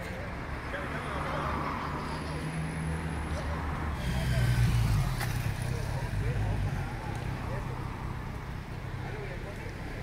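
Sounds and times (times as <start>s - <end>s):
traffic rumble: 0.0s - 10.0s.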